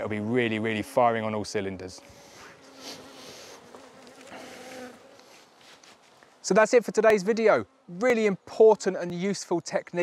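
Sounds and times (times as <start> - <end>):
bees buzzing: 0.0 - 9.2.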